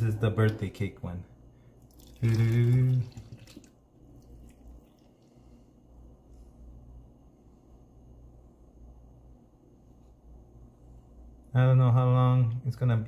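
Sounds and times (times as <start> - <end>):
low steady hum: 0.0 - 13.0
milk pouring into a mug: 1.8 - 5.6.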